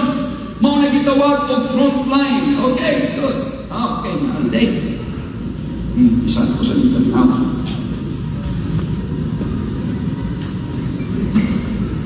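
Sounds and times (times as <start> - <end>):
low rumbling hall noise: 0.0 - 12.0.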